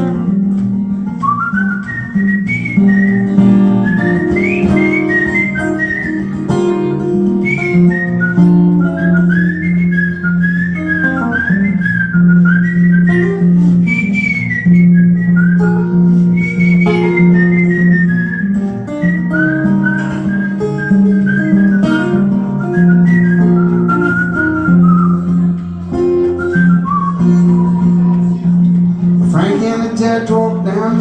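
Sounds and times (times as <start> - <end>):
acoustic guitar accompaniment: 0.0 - 31.0
man whistling blues melody: 0.0 - 31.0.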